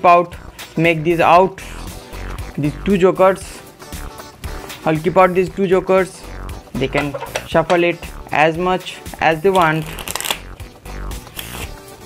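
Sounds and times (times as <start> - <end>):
background music: 0.0 - 12.0
playing cards being shuffled: 9.5 - 10.5, 11.2 - 11.9.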